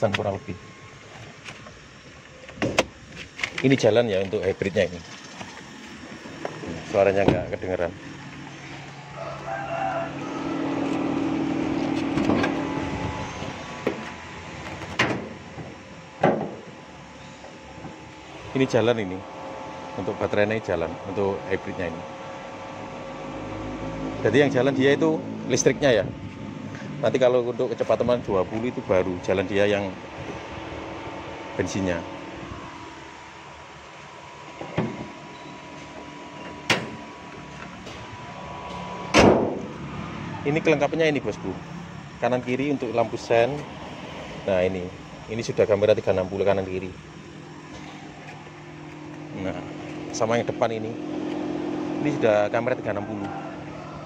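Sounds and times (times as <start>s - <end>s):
car hum with faint whine: 0.0s - 54.0s
car bonnet clicks and knocks: 2.5s - 3.6s, 13.8s - 16.7s, 34.6s - 35.2s, 36.5s - 37.0s
car bonnet knocks: 14.8s - 16.7s, 39.1s - 39.6s.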